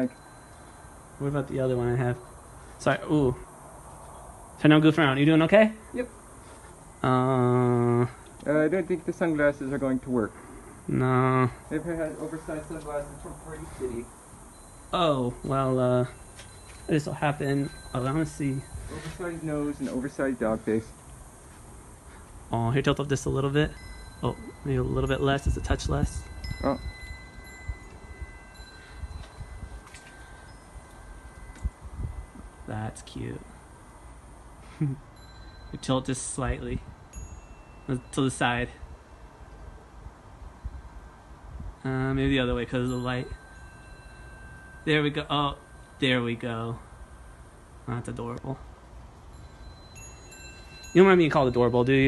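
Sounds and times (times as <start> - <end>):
metal chimes ringing: 0.0 - 3.5, 4.7 - 21.0, 22.1 - 39.6, 40.5 - 52.0.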